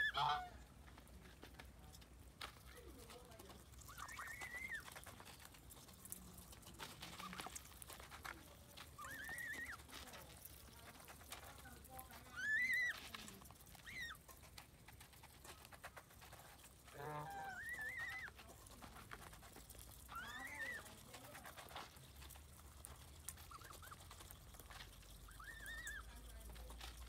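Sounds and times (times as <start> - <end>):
geese calling: 0.0 - 0.7, 3.8 - 5.1, 16.8 - 18.4, 23.4 - 26.1
bills clicking in food bowls: 2.1 - 27.0.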